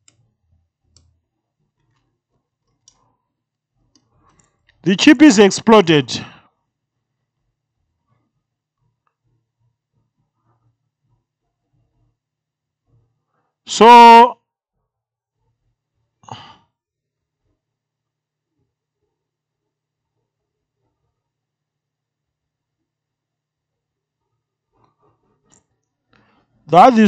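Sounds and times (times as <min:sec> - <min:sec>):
man speaking: 0:04.9 - 0:06.4, 0:13.7 - 0:14.4, 0:26.7 - 0:27.0
person sighing: 0:16.2 - 0:16.7.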